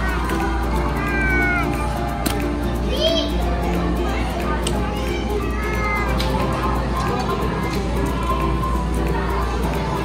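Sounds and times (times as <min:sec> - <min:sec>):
children's high-pitched calls: 0:00.0 - 0:02.2, 0:02.8 - 0:03.6, 0:04.5 - 0:08.7
background music: 0:00.0 - 0:10.0
children chattering: 0:00.0 - 0:10.0.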